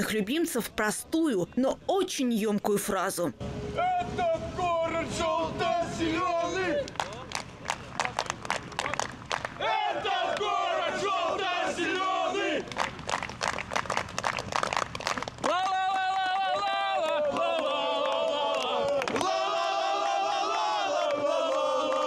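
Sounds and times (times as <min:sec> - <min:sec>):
crowd chanting in unison: 0:04.7 - 0:06.8, 0:09.6 - 0:12.7, 0:16.6 - 0:22.0
rapid clapping: 0:06.8 - 0:09.6, 0:12.6 - 0:16.4.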